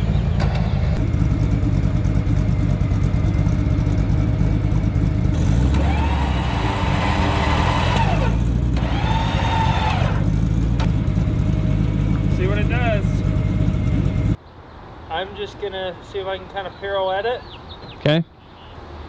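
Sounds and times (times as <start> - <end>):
rising engine whine: 0.0 - 14.4
truck engine idling and revving: 0.0 - 14.4.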